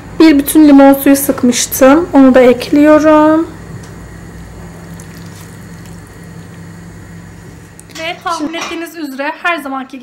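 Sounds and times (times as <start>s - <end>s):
low steady hum: 0.0s - 10.0s
liquid trickling into bowl: 4.4s - 6.9s.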